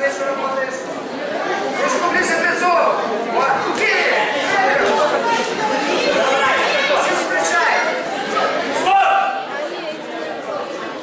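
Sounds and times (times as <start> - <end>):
voices chattering and calling out: 0.0 - 11.0.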